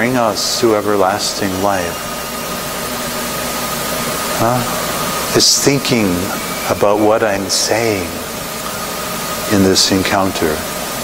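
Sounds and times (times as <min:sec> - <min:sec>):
steady background hiss: 0:00.0 - 0:11.0
thin high steady tone: 0:00.0 - 0:11.0
man saying huh: 0:04.4 - 0:04.8.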